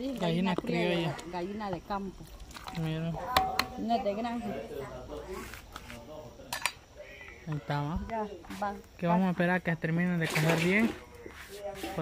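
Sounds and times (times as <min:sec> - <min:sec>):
faint voices: 0:00.0 - 0:09.0.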